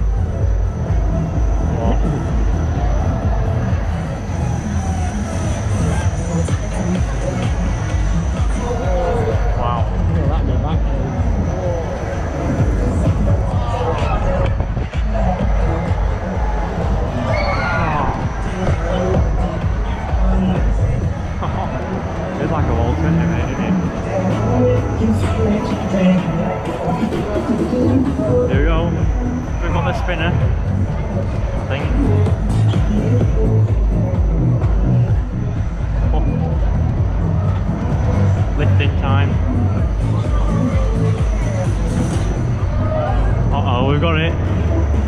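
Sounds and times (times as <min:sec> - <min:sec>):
loud dance music with heavy bass: 0:00.0 - 0:45.0
spinning ride platform rumbling: 0:00.0 - 0:45.0
thin steady high whine: 0:00.0 - 0:45.0.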